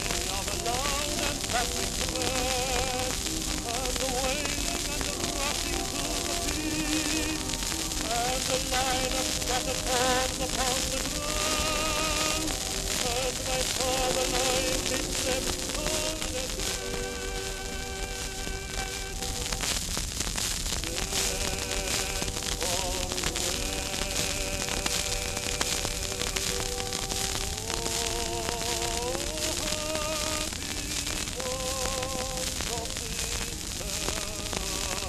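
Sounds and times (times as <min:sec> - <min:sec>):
old song recording on turntable: 0:00.0 - 0:35.0
record surface crackle and hiss: 0:00.0 - 0:35.0.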